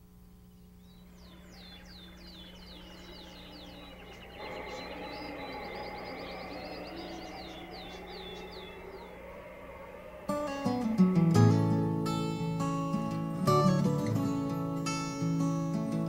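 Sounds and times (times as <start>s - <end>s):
soft background wash: 0.0s - 16.0s
steady low hum: 0.0s - 16.0s
bird chirping and trilling: 0.2s - 16.0s.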